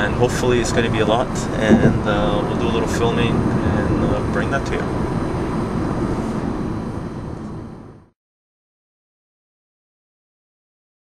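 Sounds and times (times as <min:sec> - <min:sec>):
car rumble from inside cabin: 0:00.0 - 0:08.1.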